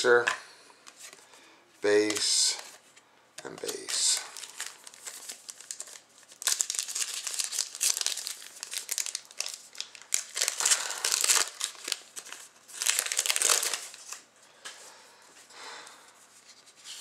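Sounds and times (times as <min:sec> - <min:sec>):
cards rustling over foil wrappers: 0:01.9 - 0:02.8, 0:03.4 - 0:14.8.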